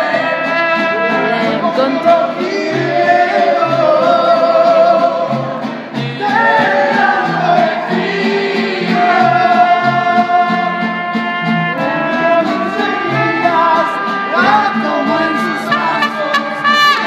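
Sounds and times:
man singing: 0.0 - 17.0
mariachi band playing: 0.0 - 17.0.

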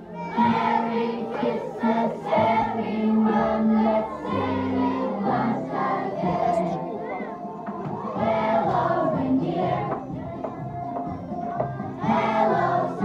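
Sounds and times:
choir singing: 0.0 - 13.0.

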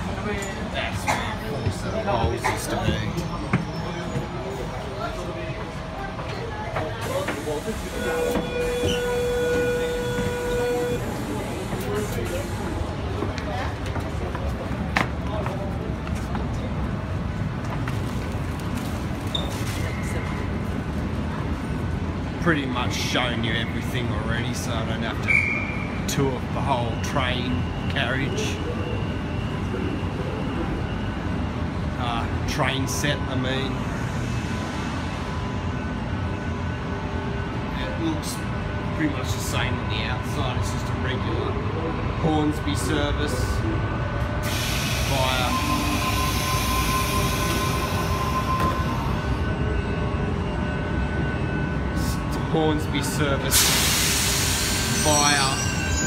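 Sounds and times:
train rumble: 0.0 - 56.0.

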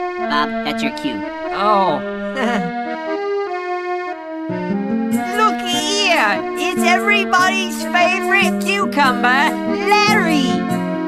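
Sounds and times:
keyboard playing chords: 0.0 - 11.0
person laughing: 2.4 - 2.8.

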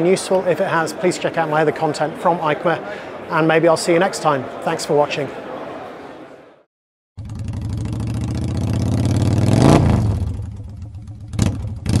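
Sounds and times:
engine revving: 7.2 - 12.0.

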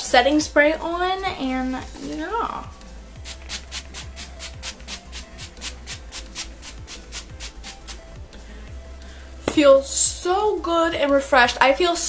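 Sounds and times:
spray bottle pump hisses: 3.2 - 8.0.

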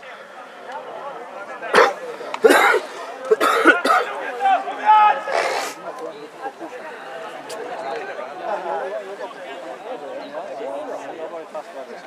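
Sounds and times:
person coughing: 1.8 - 4.1.

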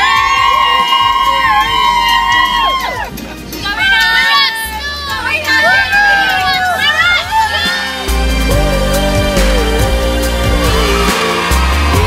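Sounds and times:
girls screaming: 0.0 - 8.1
pop music with bass: 0.0 - 12.0.

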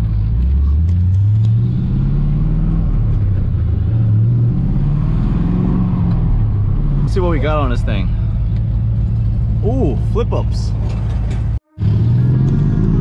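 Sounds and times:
road rumble: 0.0 - 13.0.

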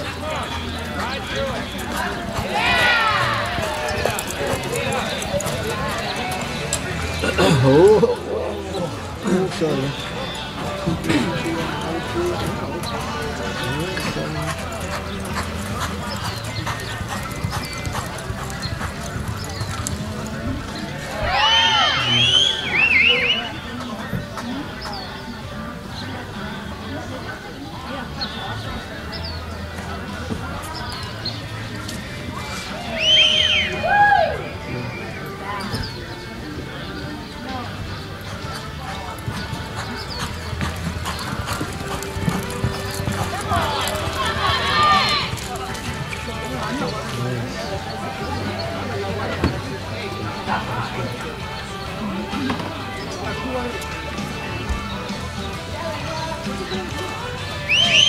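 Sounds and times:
horse hooves on dirt: 0.0 - 25.9, 35.2 - 58.0
background music: 0.0 - 58.0
voices: 0.0 - 58.0.

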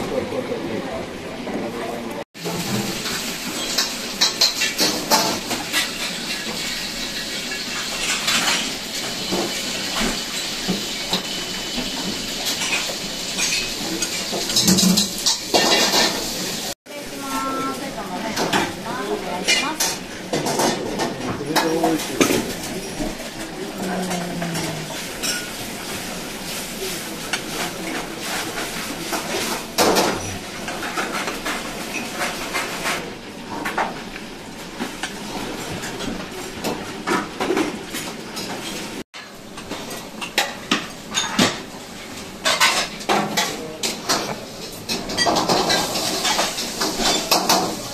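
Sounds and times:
steady kitchen hiss: 0.0 - 47.9
dishes and bowls clattering: 2.4 - 16.4, 18.3 - 26.6, 39.6 - 41.7, 42.4 - 47.9.

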